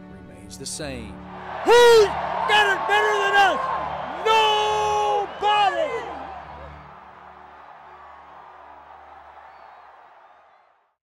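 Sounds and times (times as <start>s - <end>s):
stadium crowd noise: 1.2s - 10.9s.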